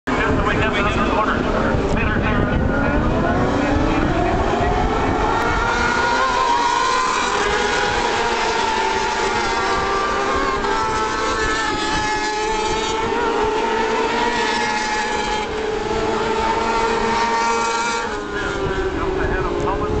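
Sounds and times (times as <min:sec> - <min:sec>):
wind buffeting microphone: 0:00.1 - 0:14.4, 0:18.0 - 0:20.0
racing motorcycles high-revving: 0:00.1 - 0:20.0.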